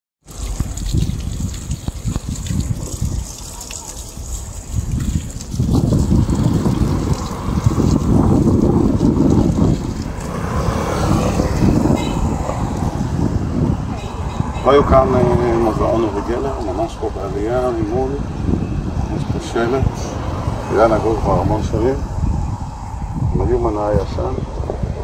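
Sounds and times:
fountain water splashing: 0.2 - 22.0
gusty low rumble: 0.3 - 25.0.

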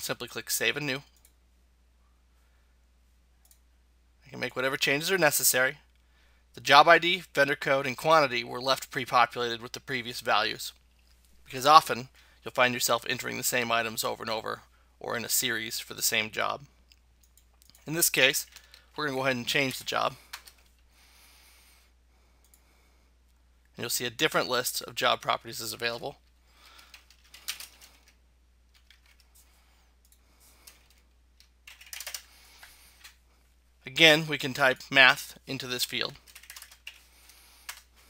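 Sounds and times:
keystrokes on computer keyboard: 26.8 - 29.3, 30.0 - 33.2, 36.2 - 37.9.

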